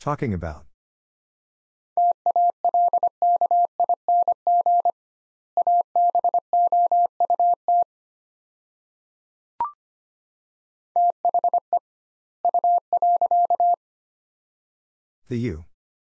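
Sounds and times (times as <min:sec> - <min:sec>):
morse code beeps: 0:02.0 - 0:05.0, 0:05.6 - 0:07.9, 0:11.0 - 0:11.8, 0:12.4 - 0:13.8.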